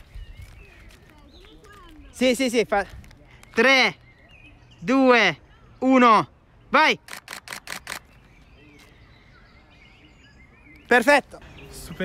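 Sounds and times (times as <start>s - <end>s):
camera shutter burst: 7.0s - 8.1s.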